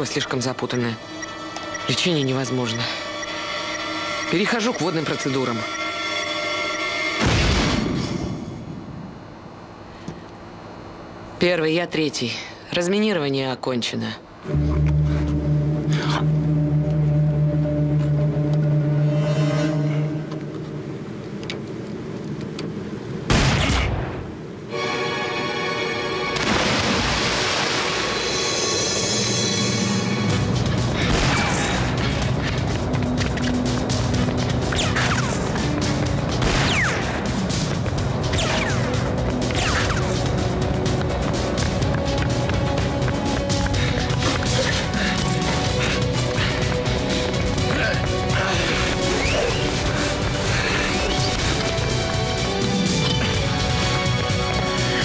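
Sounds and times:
film score music: 0:00.0 - 0:07.4, 0:14.4 - 0:21.4, 0:24.7 - 0:26.8, 0:27.9 - 0:55.0.

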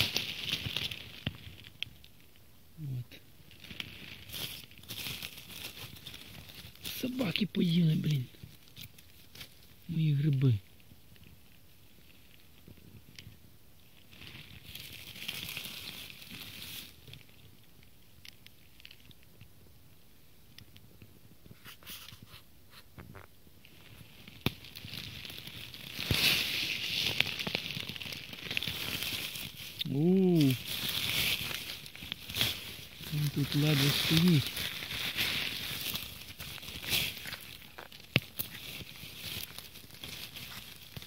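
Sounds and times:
footsteps in dry leaves: 0:00.0 - 0:01.8, 0:03.5 - 0:10.6, 0:14.0 - 0:17.4, 0:23.7 - 0:41.0
twigs snapping: 0:00.0 - 0:02.4, 0:03.4 - 0:11.3, 0:14.0 - 0:19.5, 0:23.0 - 0:41.0.

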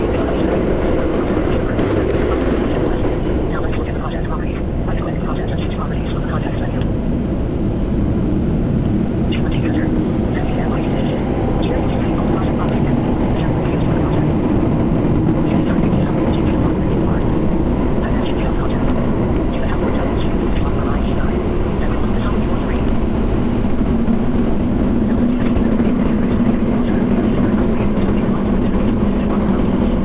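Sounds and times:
subway train deep rumble: 0:00.0 - 0:30.0.

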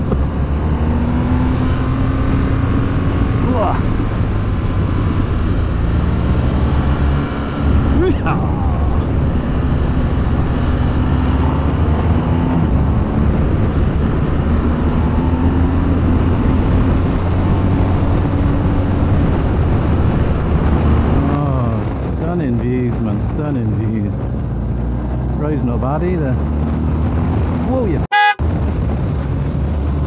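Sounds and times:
wind rush on microphone: 0:00.0 - 0:21.4, 0:26.3 - 0:30.0
motorcycle engine revving: 0:00.0 - 0:21.6.

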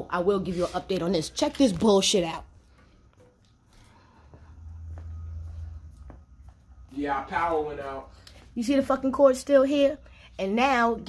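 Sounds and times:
footsteps on tiled floor: 0:00.4 - 0:10.0.

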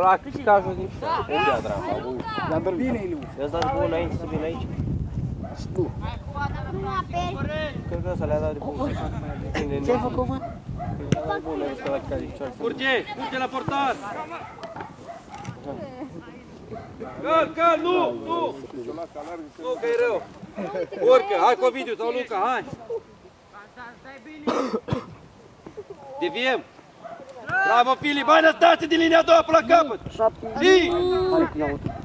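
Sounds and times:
cough-like burst: 0:24.4 - 0:25.2
spectators shouting encouragement: 0:27.2 - 0:29.8.

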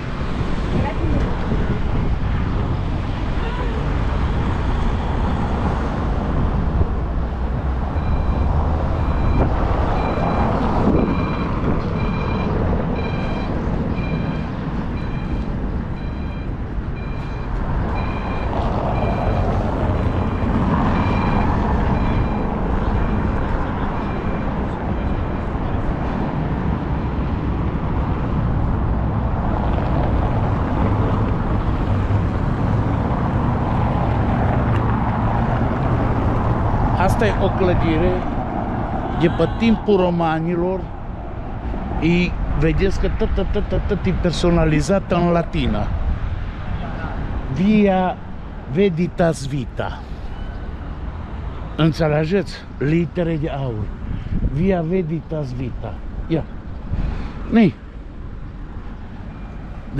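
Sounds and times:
city street traffic rumble: 0:00.0 - 0:59.9.

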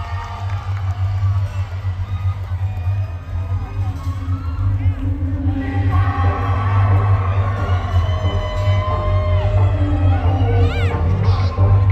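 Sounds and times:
crowd noise: 0:00.0 - 0:11.9.

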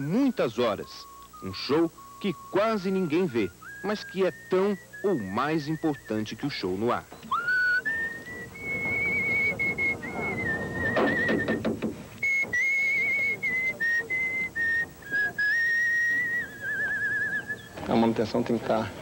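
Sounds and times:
person whistling a slow tune: 0:00.0 - 0:17.7.

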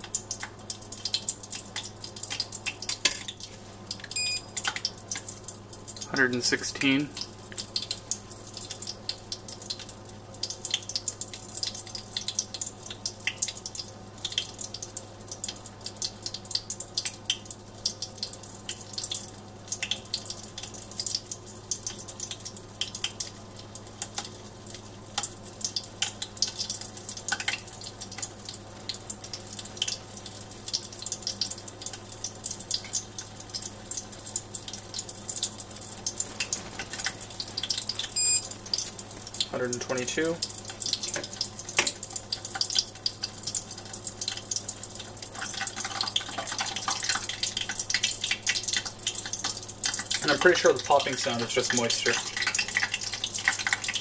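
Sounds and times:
hot oil popping and crackling: 0:00.0 - 0:54.0.

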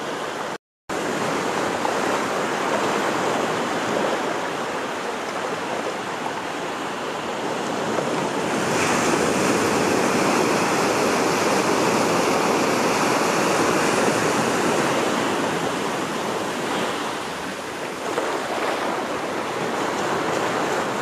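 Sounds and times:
small waves breaking on a beach: 0:00.0 - 0:21.0.

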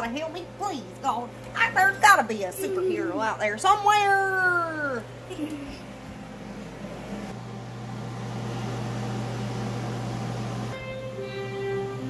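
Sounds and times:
electric fan humming and whirring: 0:00.0 - 0:12.0.

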